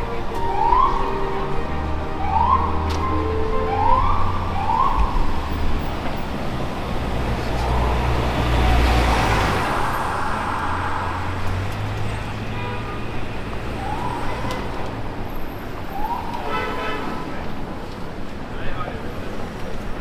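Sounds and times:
bus passing: 0:00.0 - 0:16.5
city traffic rumble: 0:00.0 - 0:20.0
siren whooping: 0:00.4 - 0:01.5, 0:02.1 - 0:05.6, 0:07.3 - 0:12.4, 0:13.7 - 0:14.8.

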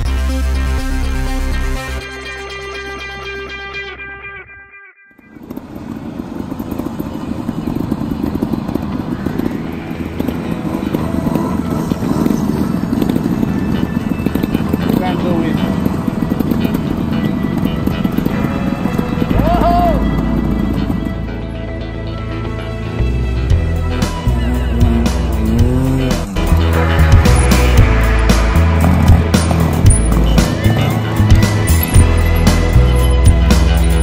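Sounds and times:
guitar music: 0:00.0 - 0:05.4, 0:08.6 - 0:34.0
motorcycle engines revving: 0:05.2 - 0:34.0.

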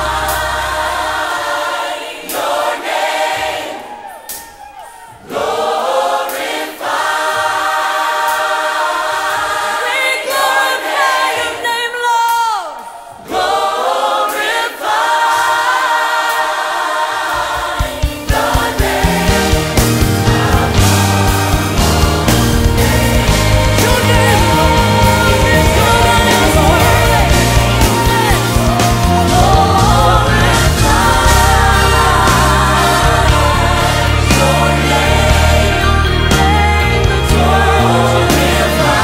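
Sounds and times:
band backing: 0:00.0 - 0:39.0
gospel choir singing: 0:00.0 - 0:39.0.

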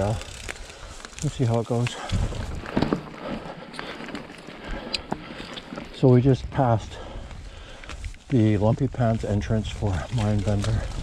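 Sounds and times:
bike tyres rolling on dirt: 0:00.0 - 0:11.0
bike knocks and rattles: 0:01.3 - 0:05.9.

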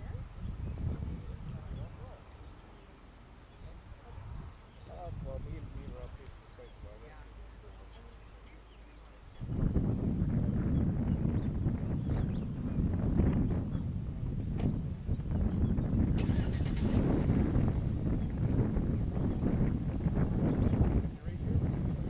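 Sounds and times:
wind buffeting microphone: 0:00.0 - 0:22.0
faint high chirps: 0:00.4 - 0:09.6.

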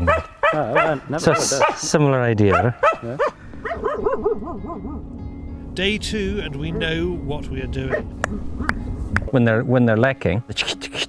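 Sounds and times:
dog yipping: 0:00.0 - 0:01.9, 0:02.5 - 0:05.0.

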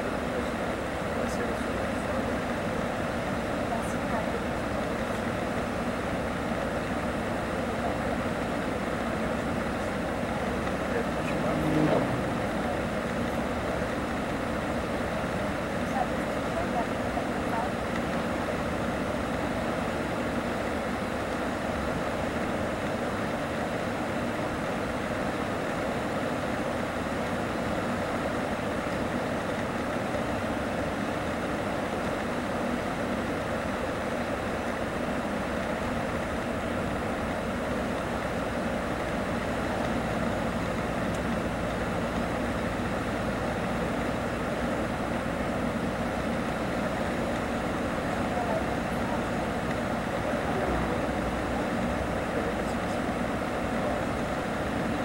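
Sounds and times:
engine and tyre drone: 0:07.6 - 0:16.0, 0:35.5 - 0:55.0.

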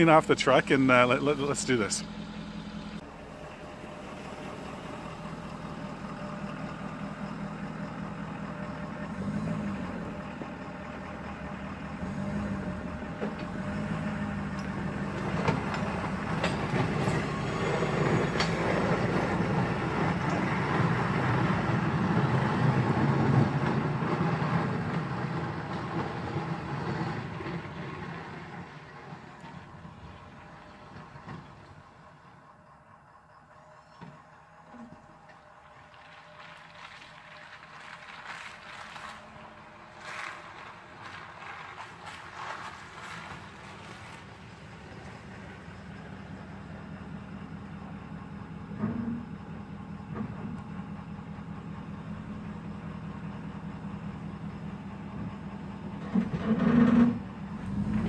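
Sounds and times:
pickup diesel engine pulling away: 0:00.0 - 0:58.0.

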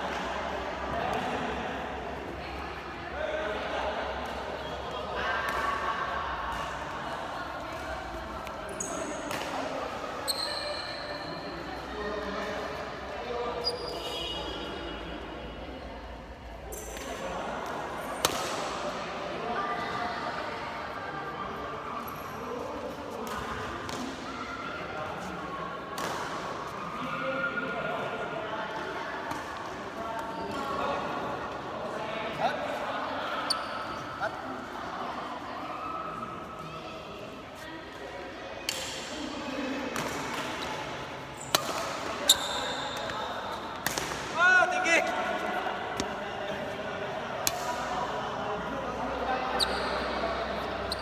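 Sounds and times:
shoes squeaking on court floor: 0:08.7 - 0:09.5, 0:10.1 - 0:11.6, 0:13.6 - 0:14.5, 0:33.4 - 0:34.2, 0:40.4 - 0:43.9, 0:49.5 - 0:51.0
rackets hitting shuttlecock: 0:09.1 - 0:09.8, 0:26.0 - 0:26.6, 0:39.9 - 0:44.4.

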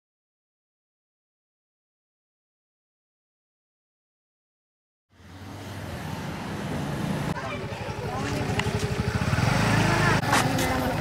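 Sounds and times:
vehicle engine running: 0:05.2 - 0:11.0
people talking: 0:07.3 - 0:11.0.

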